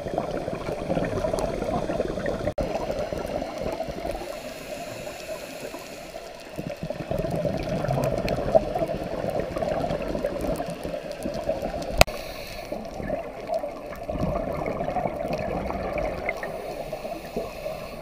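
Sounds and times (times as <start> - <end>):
bubbles gurgling underwater: 0.0 - 4.4, 6.4 - 12.1, 12.8 - 16.5
diver breathing through regulator: 4.0 - 6.7, 12.0 - 13.2, 16.3 - 18.0.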